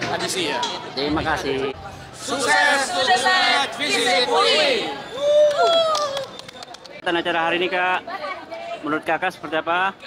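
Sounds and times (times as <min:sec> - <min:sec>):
group cheering: 0:04.6 - 0:06.4.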